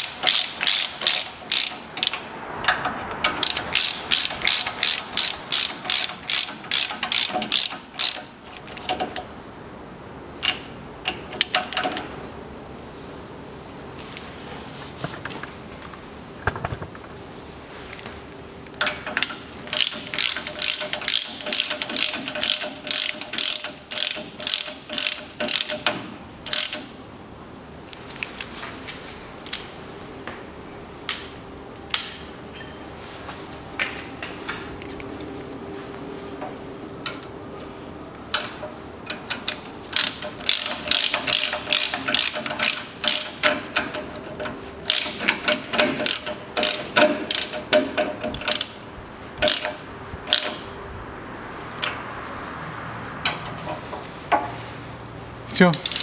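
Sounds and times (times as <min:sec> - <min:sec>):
hand ratchet clicking: 0:00.0 - 0:09.2, 0:18.8 - 0:26.9, 0:38.3 - 0:48.8, 0:49.4 - 0:50.6, 0:55.7 - 0:56.0.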